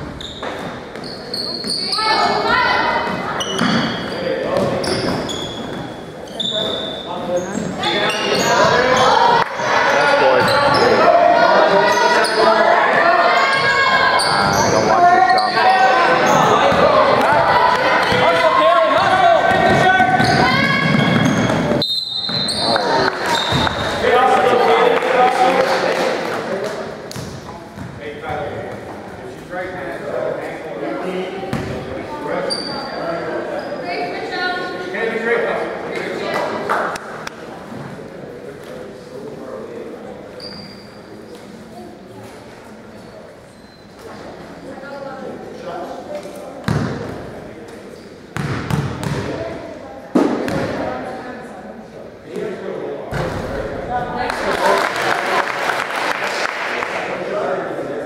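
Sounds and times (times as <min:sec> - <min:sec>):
sneaker squeaks: 0:00.0 - 0:11.1, 0:11.9 - 0:12.6, 0:13.4 - 0:16.8, 0:19.7 - 0:24.0, 0:32.4 - 0:34.1, 0:40.3 - 0:41.5, 0:42.9 - 0:44.7.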